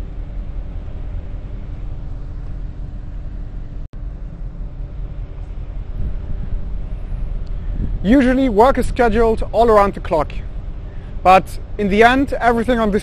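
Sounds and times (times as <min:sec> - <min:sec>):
faint hum: 0:00.0 - 0:13.0.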